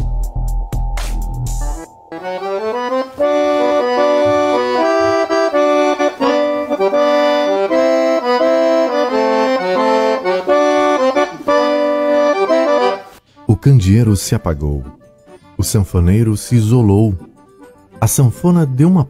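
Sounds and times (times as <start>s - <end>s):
accordion playing lively melody: 2.1s - 19.0s.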